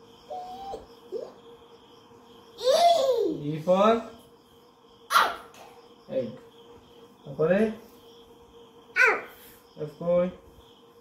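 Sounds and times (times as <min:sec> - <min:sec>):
sharp bark-like yelp: 0:05.1 - 0:05.5.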